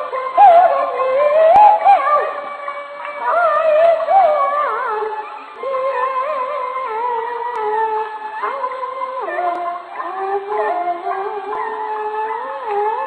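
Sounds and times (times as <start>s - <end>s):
chinese opera singing on old record: 0.0s - 13.0s.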